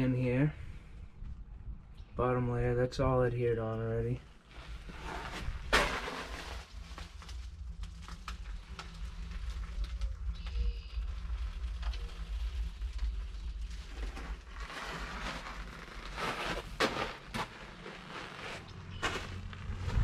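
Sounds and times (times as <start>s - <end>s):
footsteps on gravel: 13.8s - 20.0s.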